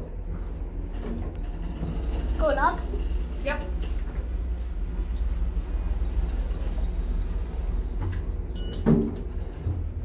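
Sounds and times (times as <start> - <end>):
elevator car rumbling: 0.0 - 10.0.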